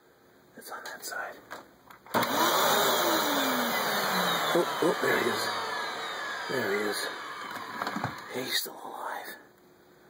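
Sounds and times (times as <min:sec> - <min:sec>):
vacuum cleaner motor running: 0:02.1 - 0:08.4.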